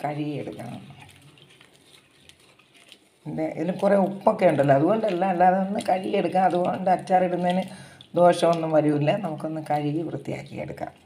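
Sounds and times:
water sloshing in a steel pot: 0.0 - 11.0.

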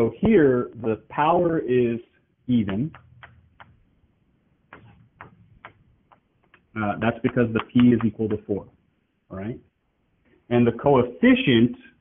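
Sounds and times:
writing taps and scratches on board: 2.6 - 3.8, 4.7 - 8.6.

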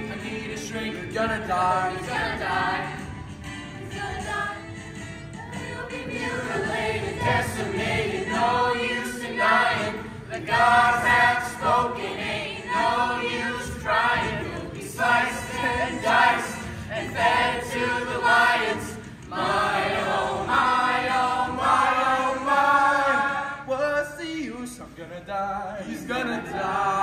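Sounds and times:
young voices singing in chorus: 0.0 - 23.7, 25.9 - 27.0.

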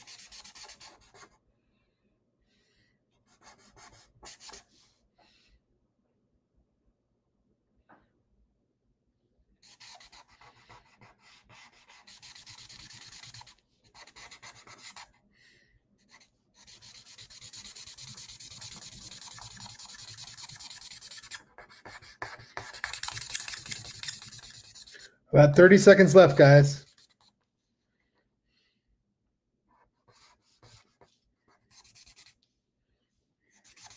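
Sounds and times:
pencil scratching on paper: 0.0 - 1.4, 3.3 - 5.0, 9.6 - 15.2, 16.0 - 25.1, 26.0 - 27.4, 29.7 - 32.4, 33.5 - 33.9.

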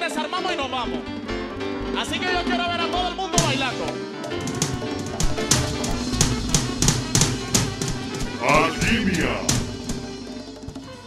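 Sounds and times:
cumbia band playing: 0.0 - 11.0
percussion hits: 3.4 - 11.0
person calling out: 8.4 - 9.7.

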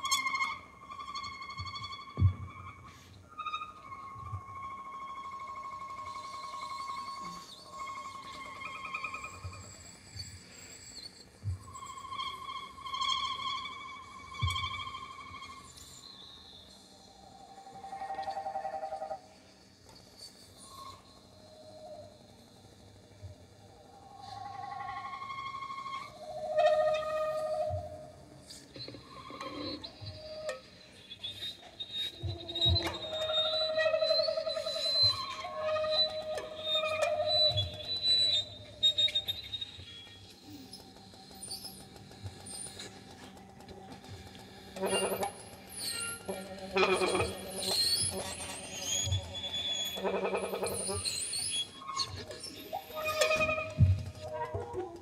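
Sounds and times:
bowed violin: 32.0 - 40.5, 41.7 - 55.0.

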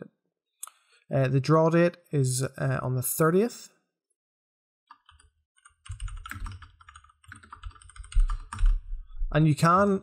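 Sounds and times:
computer keyboard typing: 4.9 - 8.8.

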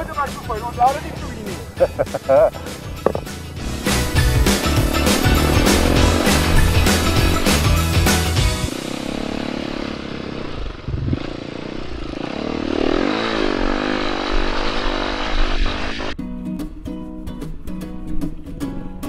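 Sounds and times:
music with steady beat: 0.0 - 8.7
motorcycle engine revving: 0.7 - 16.2.

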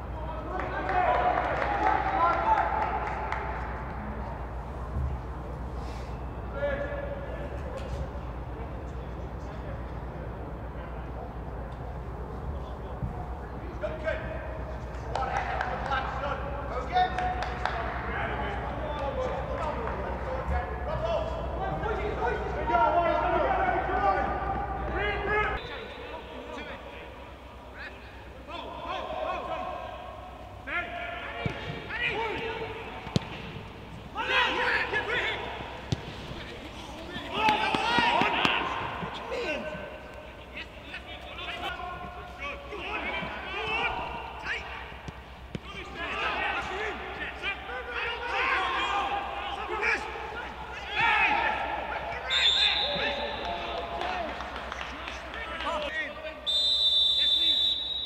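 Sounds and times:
players shouting: 0.0 - 4.4, 13.7 - 58.0
ball being kicked: 33.0 - 33.6, 35.8 - 36.4.

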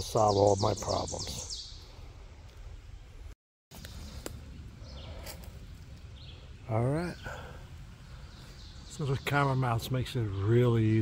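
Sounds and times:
high bird chirps: 0.0 - 1.9.

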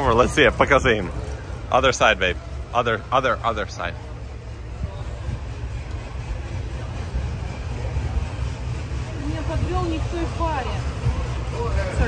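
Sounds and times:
distant voices talking: 0.0 - 12.0.

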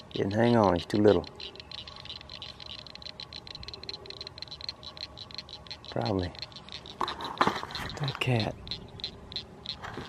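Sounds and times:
fishing reel ticking: 0.0 - 10.0.

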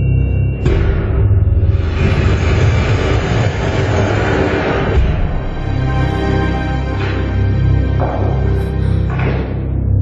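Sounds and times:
dense film score rumble: 0.0 - 10.0.

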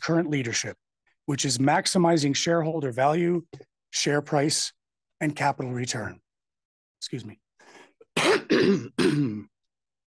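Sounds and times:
man clearing his throat: 8.2 - 9.5.

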